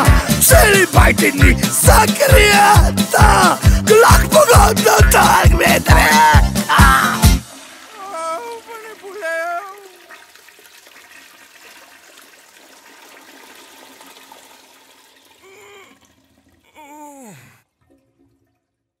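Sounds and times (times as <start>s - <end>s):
toilet flushing: 0.0s - 16.8s, 17.7s - 18.8s.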